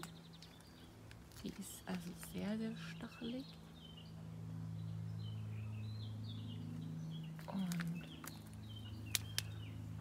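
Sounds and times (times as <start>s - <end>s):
bird chirps: 0.0s - 1.0s, 2.3s - 10.0s.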